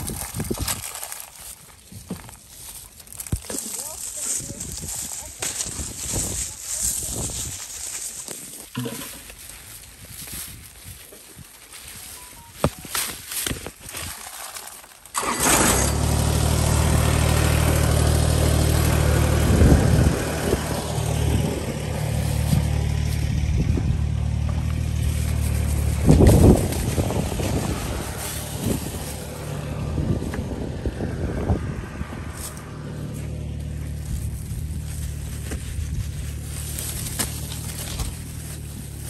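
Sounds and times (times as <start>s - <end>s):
engine running steadily: 15.2s - 39.0s.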